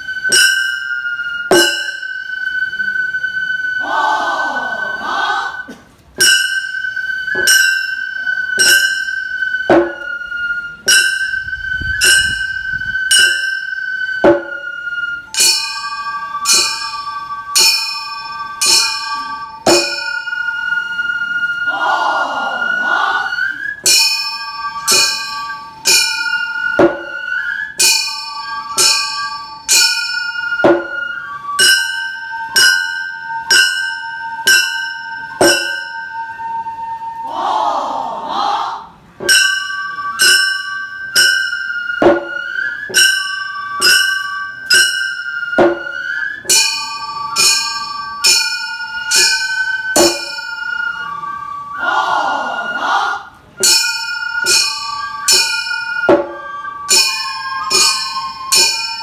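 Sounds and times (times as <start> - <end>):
hand gongs clanging rhythmically: 0.0 - 2.7, 6.1 - 20.6, 23.8 - 36.5, 39.2 - 51.6, 53.5 - 59.0
bamboo flutes holding long notes: 0.0 - 59.0.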